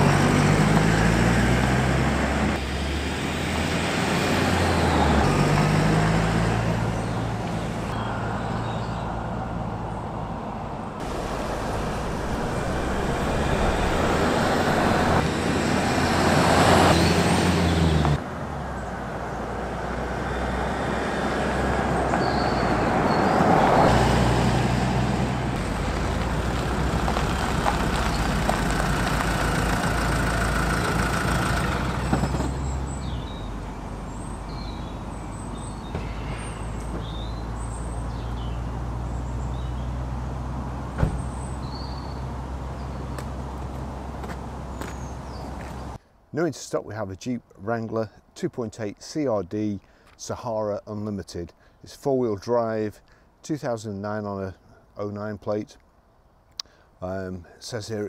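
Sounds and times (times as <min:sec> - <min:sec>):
road and traffic noise: 0:00.0 - 0:58.0
vehicle engine running: 0:11.0 - 0:16.3, 0:25.2 - 0:34.2.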